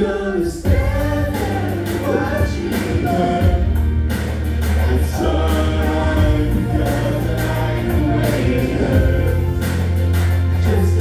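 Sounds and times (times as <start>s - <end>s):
person singing: 0.0s - 3.8s, 4.6s - 11.0s
pop-rap backing track with bass: 0.0s - 11.0s.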